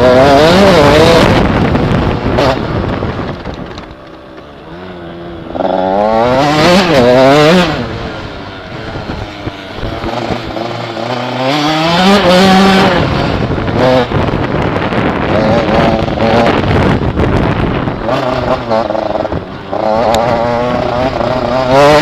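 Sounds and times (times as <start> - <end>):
motorcycle engine revving: 0.0 - 22.0.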